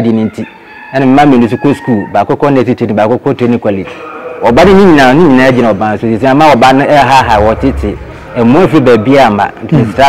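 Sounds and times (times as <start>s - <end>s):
rooster crowing: 0.3s - 2.2s
man speaking: 3.1s - 10.0s.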